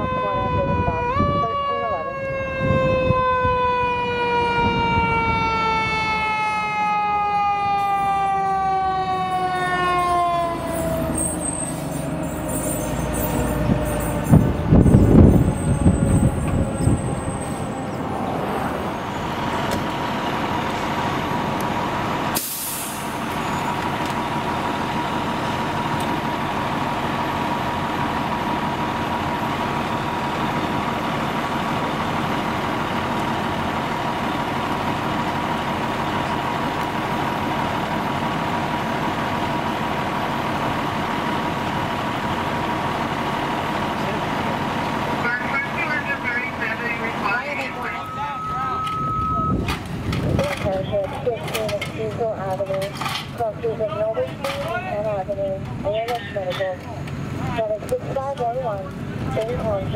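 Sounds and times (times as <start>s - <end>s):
diesel engines running: 0.0s - 59.9s
air hiss burst: 22.4s - 23.2s
steady beep: 47.6s - 49.7s.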